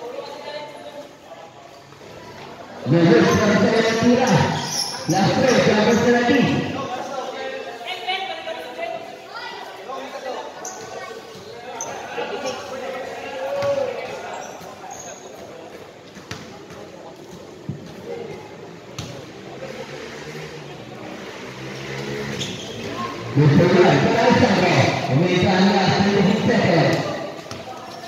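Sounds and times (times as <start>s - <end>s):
voices of players and onlookers: 0.0s - 28.0s
basketball bouncing on concrete: 26.9s - 27.7s.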